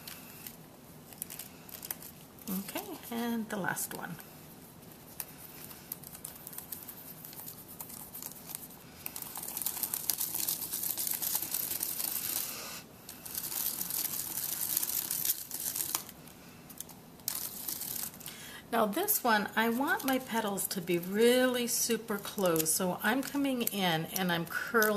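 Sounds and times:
paper petals crinkling and rustling: 0:00.0 - 0:24.9.

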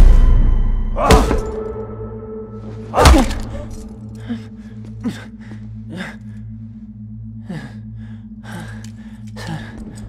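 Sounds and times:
low drone: 0:00.0 - 0:10.0.

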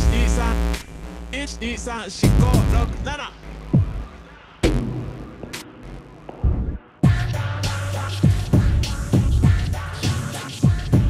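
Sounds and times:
electronic synthesizer track: 0:00.0 - 0:11.0
deep drum machine kick: 0:02.2 - 0:03.0, 0:06.3 - 0:07.4, 0:08.2 - 0:09.8, 0:10.6 - 0:11.0.

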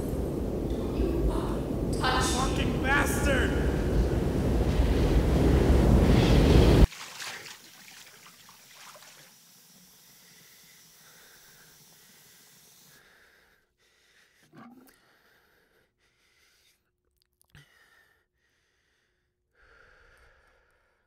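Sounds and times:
television static hiss: 0:00.0 - 0:05.2.

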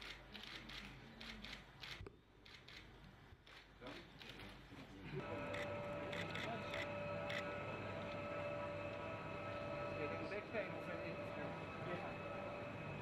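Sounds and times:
steady hum: 0:05.1 - 0:13.0.

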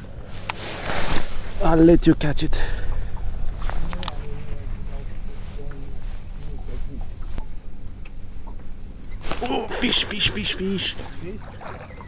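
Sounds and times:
wind rumble on microphone: 0:00.0 - 0:09.4.

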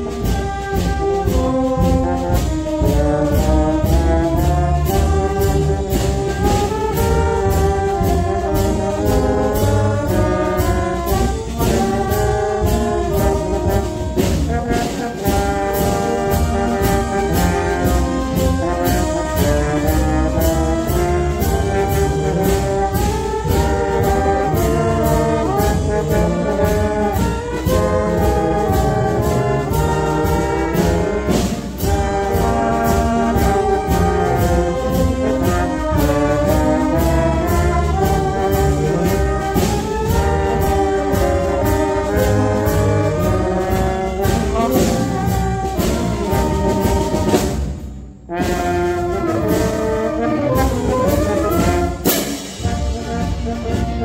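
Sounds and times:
percussion beat: 0:00.0 - 0:54.0
trumpets and trombones: 0:00.0 - 0:54.0.

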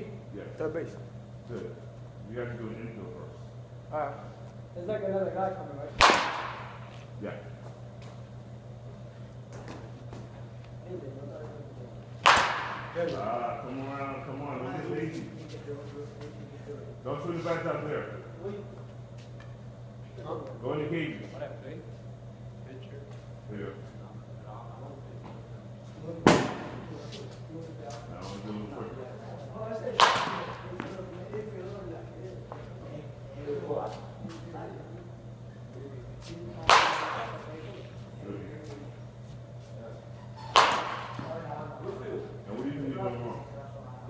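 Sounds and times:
baseball bat hitting ball: 0:06.0 - 0:06.9, 0:12.2 - 0:13.1, 0:26.3 - 0:26.8, 0:30.0 - 0:30.9, 0:36.6 - 0:37.4, 0:40.5 - 0:41.3.

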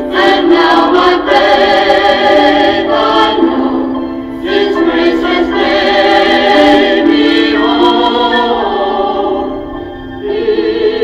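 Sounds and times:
two voices singing gospel duet: 0:00.0 - 0:11.0.

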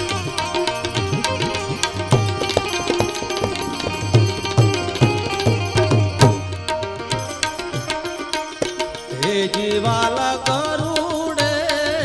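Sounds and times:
tabla drum strokes: 0:00.0 - 0:11.5
electric banjo plucked notes: 0:00.8 - 0:09.1.

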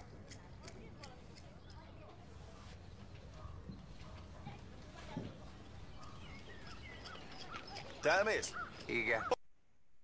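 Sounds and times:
bird chirps: 0:05.5 - 0:09.4.

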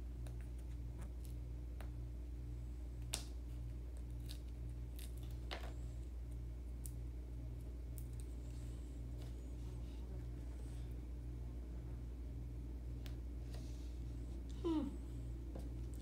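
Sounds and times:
low pulsing hum: 0:00.0 - 0:16.0.

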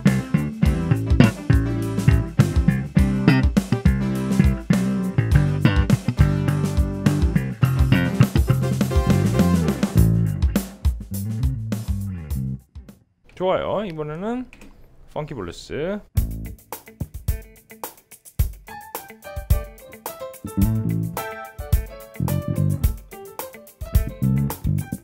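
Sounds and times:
bass guitar plucked fingerstyle: 0:00.0 - 0:12.7, 0:16.2 - 0:16.6, 0:20.4 - 0:21.2, 0:22.2 - 0:23.0, 0:24.0 - 0:25.0
backing track music: 0:00.0 - 0:13.0, 0:16.1 - 0:25.0.

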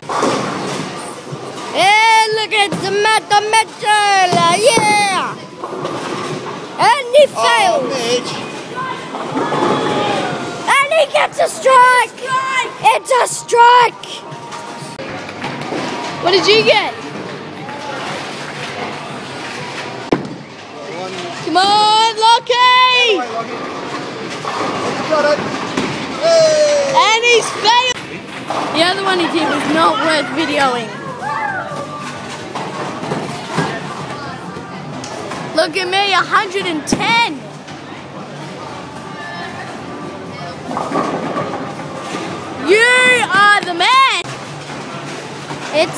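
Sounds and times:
bowling alley background noise: 0:00.0 - 0:45.9
faint background music: 0:00.0 - 0:45.9
chatter: 0:00.4 - 0:45.9.

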